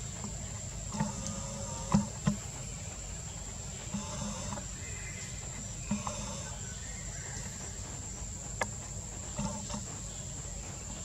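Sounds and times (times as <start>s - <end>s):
monkey call: 0.0s - 8.3s.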